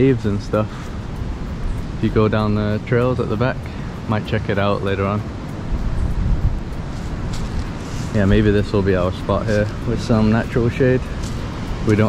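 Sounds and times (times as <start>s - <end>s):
steady outdoor hiss: 0.0s - 12.0s
wind buffeting microphone: 0.0s - 12.0s.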